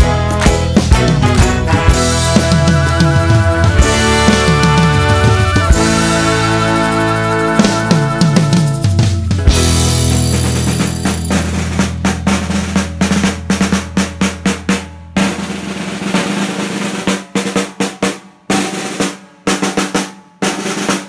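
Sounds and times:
snare drum rolls and strokes: 0:00.0 - 0:21.0.

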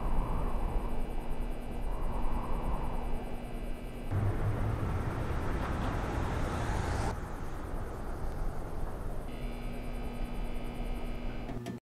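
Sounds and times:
low rumbling noise: 0:00.0 - 0:11.3.

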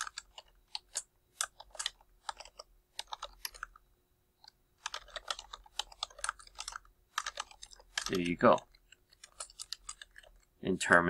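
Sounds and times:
keyboard typing: 0:00.0 - 0:03.8, 0:04.4 - 0:10.5.

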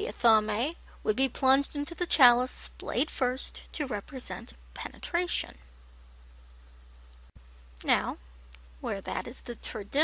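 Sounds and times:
person speaking: 0:00.0 - 0:05.7, 0:07.8 - 0:10.0
low steady background hum: 0:00.0 - 0:10.0
click: 0:07.1 - 0:07.3.

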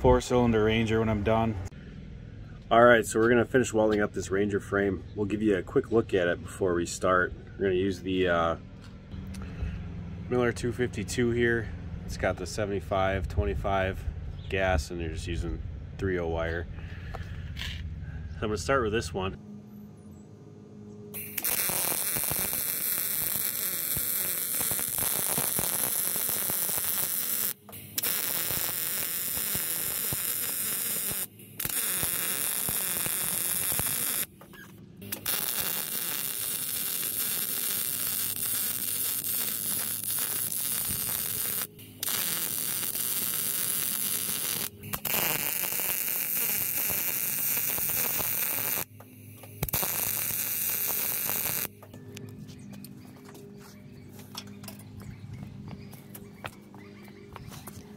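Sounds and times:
welder arc crackling: 0:21.2 - 0:34.3, 0:35.0 - 0:48.9, 0:49.5 - 0:51.7.

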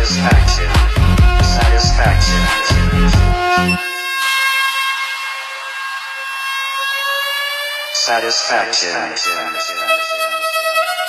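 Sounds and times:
electronic dance beat: 0:00.0 - 0:10.1.

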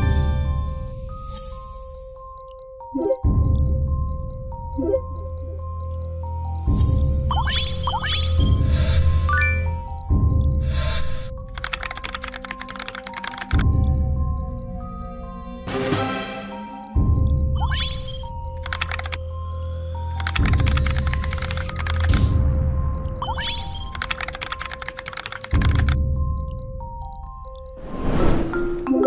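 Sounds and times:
background music with deep bass: 0:00.0 - 0:11.6, 0:13.0 - 0:17.6, 0:19.2 - 0:23.3, 0:25.5 - 0:27.8
keyboard typing clicks: 0:11.4 - 0:14.6, 0:17.6 - 0:22.2, 0:23.2 - 0:27.8.

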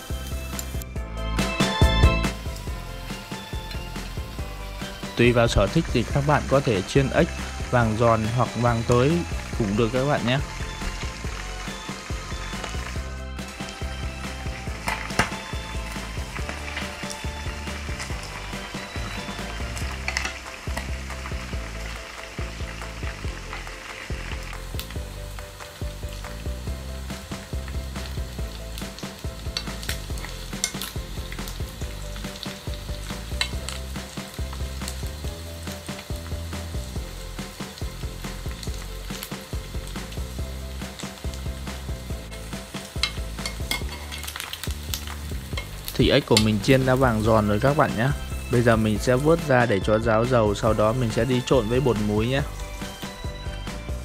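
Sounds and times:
frying oil sizzling and popping: 0:00.0 - 0:54.0.

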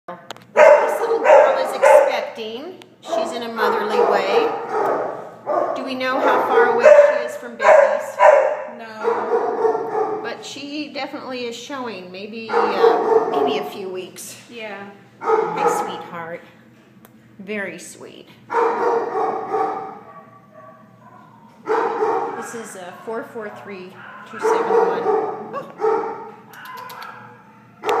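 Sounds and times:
dog barking loudly: 0:00.5 - 0:02.4, 0:03.1 - 0:10.3, 0:12.5 - 0:13.7, 0:15.2 - 0:16.0, 0:18.5 - 0:22.7, 0:23.5 - 0:28.0
dog whining: 0:12.5 - 0:13.6.

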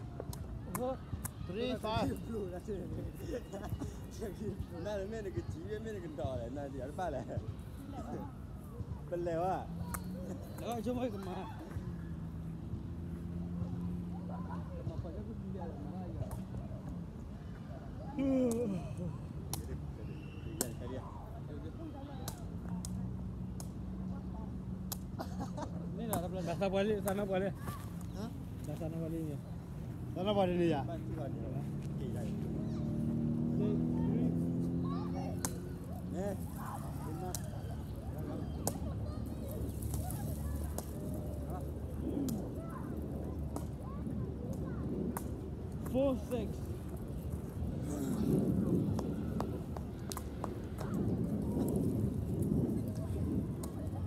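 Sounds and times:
faint voices: 0:00.0 - 0:54.0
vehicle hum: 0:25.5 - 0:54.0.

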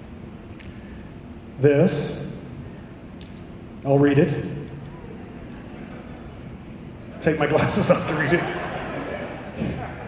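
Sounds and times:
large hall audience noise: 0:03.8 - 0:10.0.

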